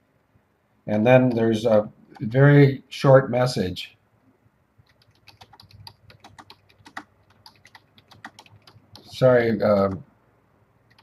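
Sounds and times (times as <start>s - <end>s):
faint keyboard typing: 1.2s - 2.5s, 4.8s - 10.1s.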